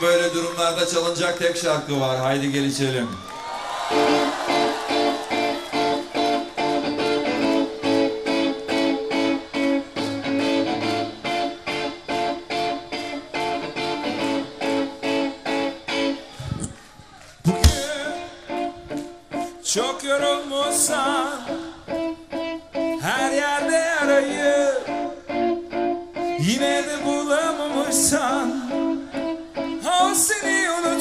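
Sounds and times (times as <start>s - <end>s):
rock band playing: 3.8s - 16.4s, 17.5s - 19.6s, 20.7s - 31.0s.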